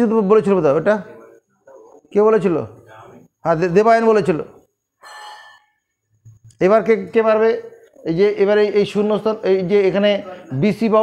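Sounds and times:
man speaking: 0.0s - 4.7s, 6.5s - 11.0s.

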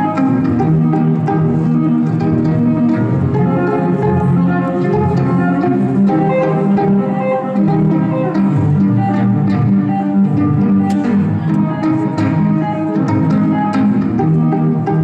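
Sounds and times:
looped violin phrases: 0.0s - 15.0s.

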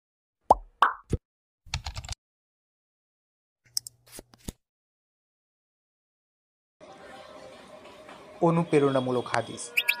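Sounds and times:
keyboard typing clicks: 1.7s - 2.2s.

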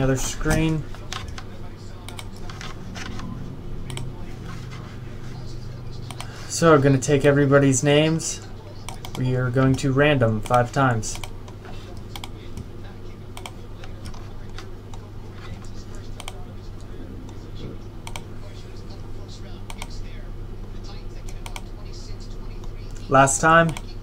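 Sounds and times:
steady low hum: 0.0s - 24.0s
keyboard and mouse clicks: 0.5s - 4.1s.

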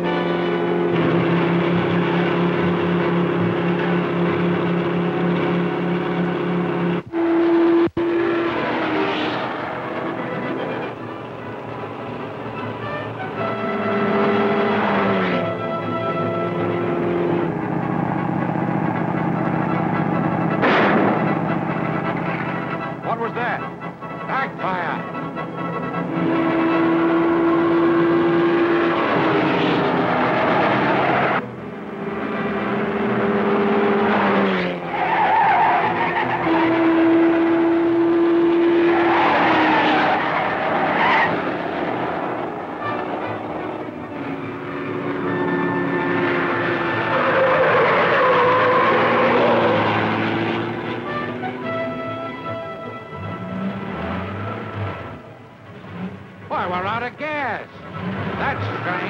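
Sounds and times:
film score with long held notes: 0.0s - 59.0s.

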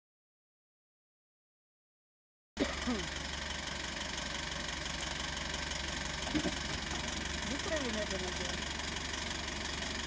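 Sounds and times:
car engine idling: 2.6s - 10.0s.

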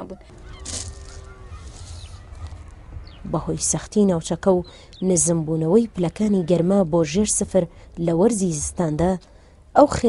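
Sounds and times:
low outdoor rumble: 0.0s - 10.0s
honk-like animal call: 0.2s - 2.6s.

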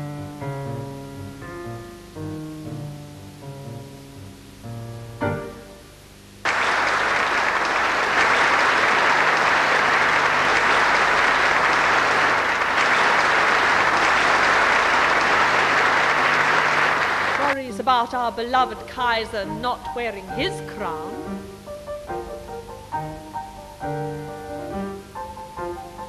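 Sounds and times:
audience applauding: 6.4s - 17.6s.

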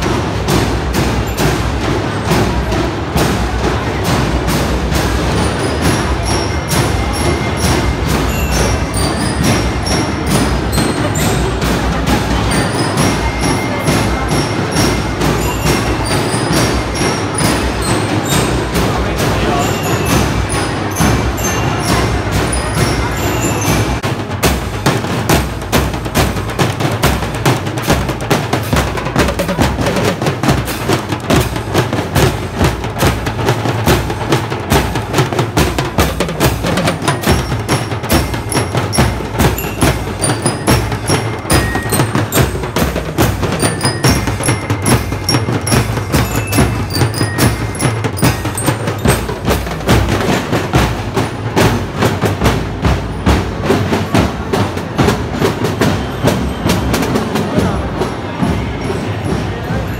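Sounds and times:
bell lyres ringing a melody: 0.0s - 24.9s, 25.7s - 59.9s
snare and bass drums: 0.0s - 59.4s.

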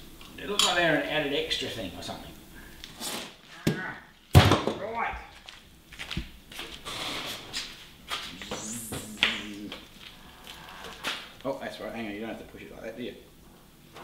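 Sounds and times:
low muttering voice: 8.3s - 9.8s.

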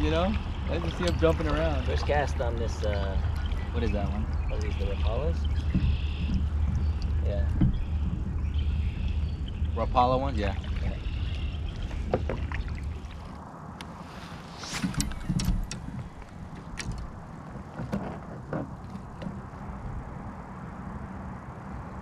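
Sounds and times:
steady low rumble: 0.0s - 22.0s
gear clicking and knocking: 5.4s - 9.5s, 14.8s - 19.5s.

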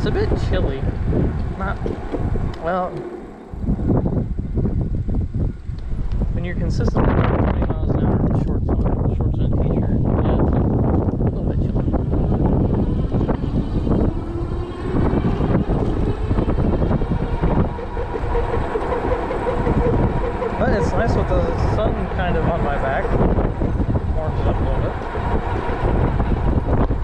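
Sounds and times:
wind buffeting microphone: 0.0s - 27.0s
electric motor whine: 10.8s - 27.0s.

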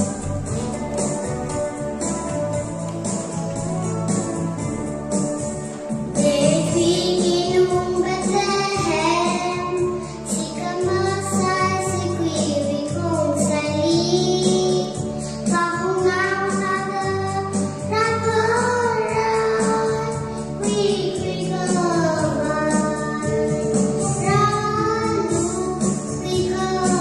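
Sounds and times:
instrumental backing chords: 0.0s - 17.8s, 18.4s - 27.0s
girl singing into a microphone: 6.0s - 27.0s.

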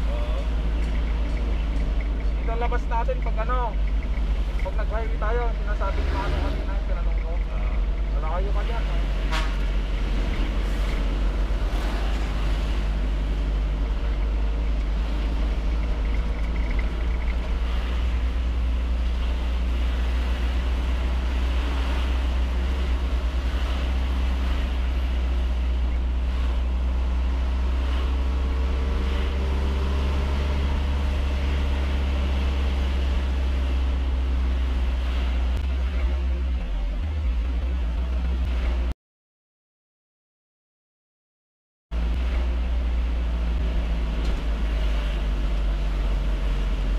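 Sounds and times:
road and wind noise: 0.0s - 39.0s, 41.9s - 46.9s
vehicle engine rumble: 0.0s - 39.0s, 41.9s - 46.9s.

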